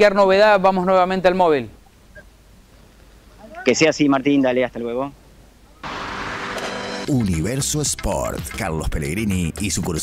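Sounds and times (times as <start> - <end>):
vehicle engine and road noise: 5.8 - 8.2.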